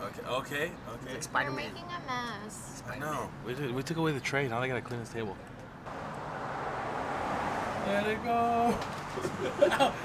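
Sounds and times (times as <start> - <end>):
car rushing past: 5.9 - 9.6.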